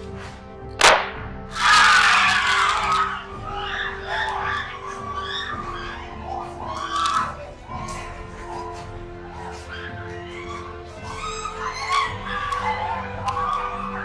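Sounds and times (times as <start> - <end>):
background music: 0.0 - 14.0
sharp smack: 0.8 - 1.4
people screaming and shouting: 0.8 - 14.0.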